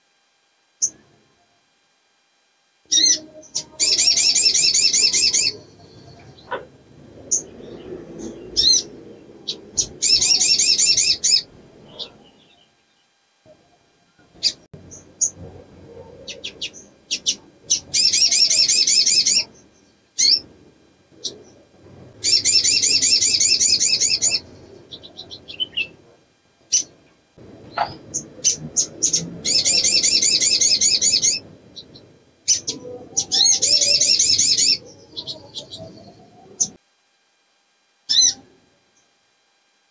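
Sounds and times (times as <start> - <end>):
bird rattling trills: 2.9 - 12.6, 14.4 - 26.0, 26.7 - 35.9
low background rumble: 2.9 - 12.8, 13.4 - 36.8.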